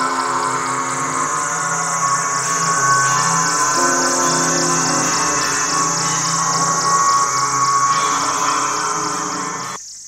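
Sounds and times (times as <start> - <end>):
electronic dance music: 0.0 - 9.8
high wash of noise: 0.0 - 9.8.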